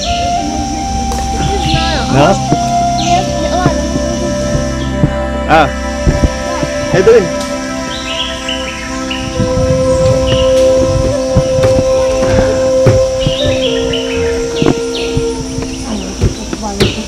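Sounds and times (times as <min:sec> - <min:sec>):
high bird chirps: 0:00.0 - 0:17.0
music of long held notes: 0:00.0 - 0:17.0.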